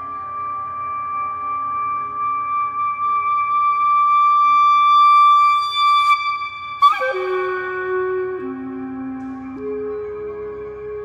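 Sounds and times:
clarinet holding high note: 0:00.0 - 0:11.0.

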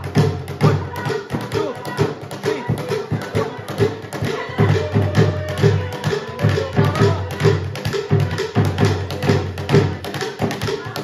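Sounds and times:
drum in steady dance rhythm: 0:00.0 - 0:11.0.

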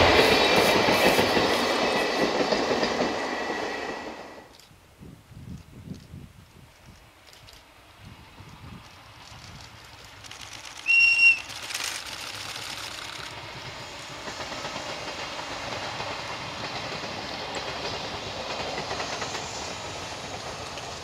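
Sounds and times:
train wheels clattering on rails: 0:00.0 - 0:04.5, 0:06.8 - 0:21.0
high-pitched locomotive whistle: 0:10.8 - 0:11.6.

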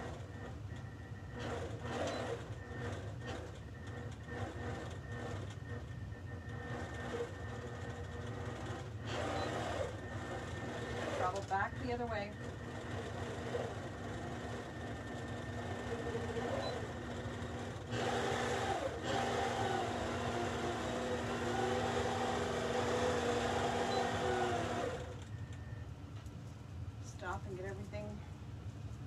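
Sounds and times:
quilting machine stitching: 0:01.3 - 0:05.8, 0:06.4 - 0:25.2.

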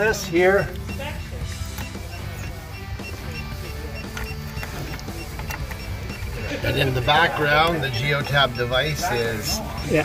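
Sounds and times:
short high beeps: 0:00.0 - 0:06.4, 0:08.0 - 0:10.0.

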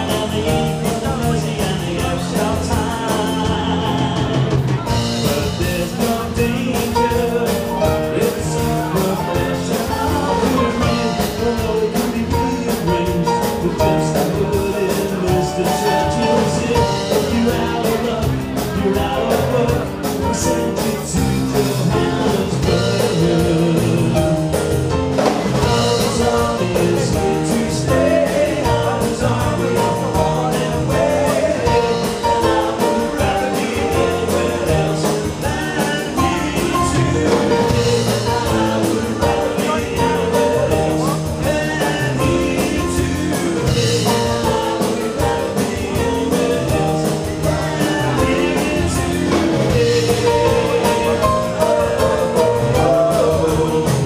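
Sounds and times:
drum kit beat: 0:00.0 - 0:54.0
keyboard: 0:00.0 - 0:54.0
live rock band: 0:00.0 - 0:54.0
man singing into a microphone: 0:00.0 - 0:54.0.

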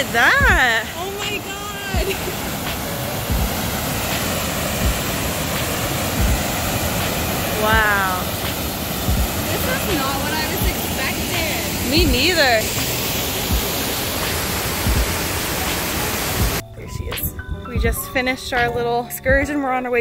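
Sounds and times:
waterfall pouring over rocks: 0:00.0 - 0:16.6
person exclaiming: 0:07.5 - 0:08.3.

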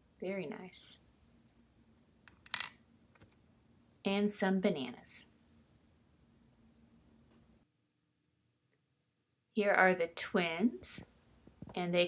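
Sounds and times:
plastic toy pieces clicking: 0:02.3 - 0:02.8.

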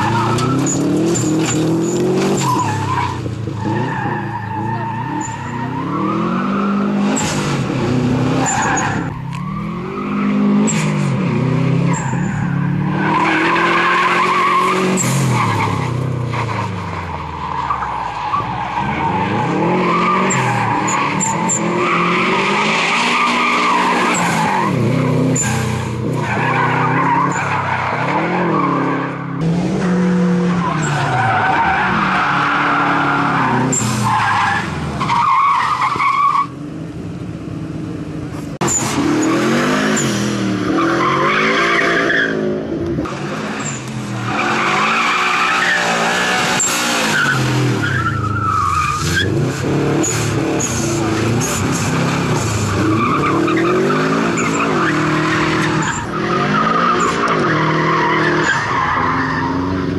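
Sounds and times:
car engine revving hard: 0:00.0 - 0:16.8, 0:18.7 - 0:35.5, 0:38.5 - 0:59.9
tyres skidding on gravel: 0:00.0 - 0:36.6, 0:43.0 - 0:59.9.

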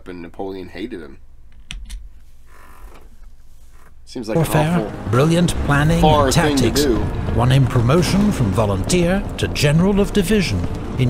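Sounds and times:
faint creak: 0:02.1 - 0:04.1.

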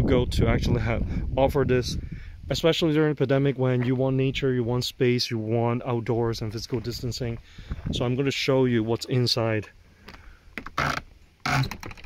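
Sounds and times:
door scraping open: 0:10.6 - 0:12.0.

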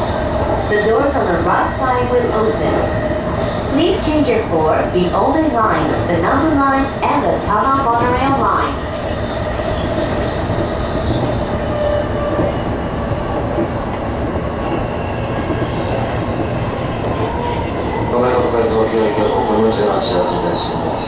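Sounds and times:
train wheels rumbling on rail: 0:00.0 - 0:21.0.

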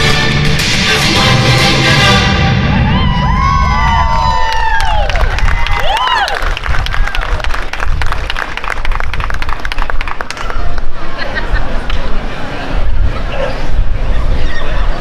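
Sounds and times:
dance music: 0:00.0 - 0:03.7
audience whooping and cheering: 0:02.5 - 0:07.6
audience clapping: 0:04.2 - 0:10.9.

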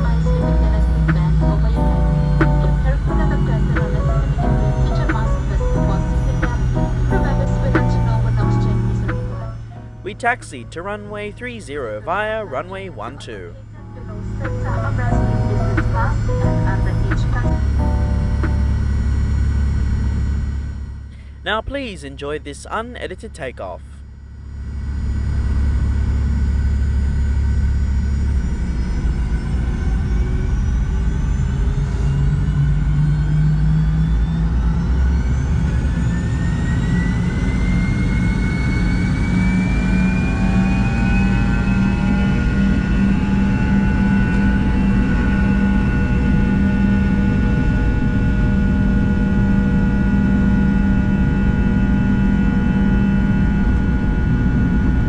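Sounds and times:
constant engine rumble: 0:00.0 - 0:55.0
jet engine whine rising: 0:00.0 - 0:55.0.

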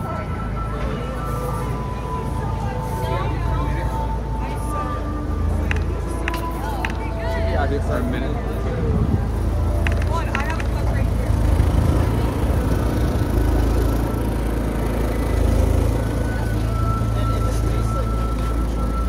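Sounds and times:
indistinct voices: 0:00.0 - 0:19.0
low traffic rumble: 0:00.0 - 0:19.0.

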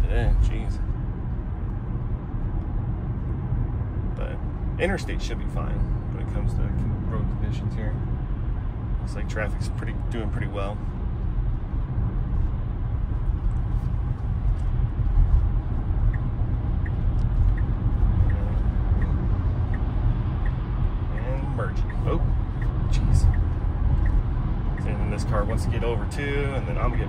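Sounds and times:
road and tyre rumble in car: 0:00.0 - 0:27.0
turn signal ticking: 0:00.4 - 0:27.0.

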